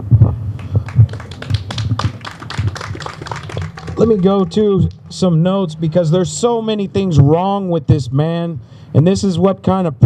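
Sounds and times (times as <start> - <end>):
crowd applauding: 0.6 - 5.7.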